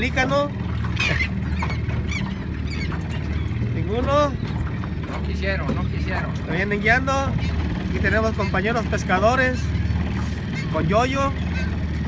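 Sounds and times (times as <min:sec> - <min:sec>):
boat engine idling: 0:00.0 - 0:12.0
gulls calling: 0:00.0 - 0:12.0.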